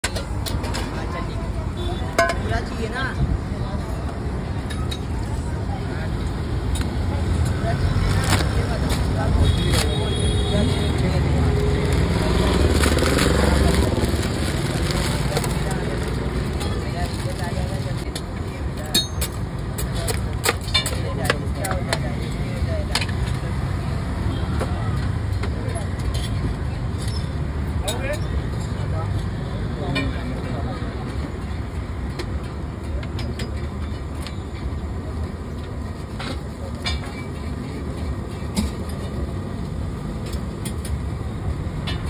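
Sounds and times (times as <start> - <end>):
faint voices: 0.0 - 19.0
street noise rumble: 0.0 - 42.0.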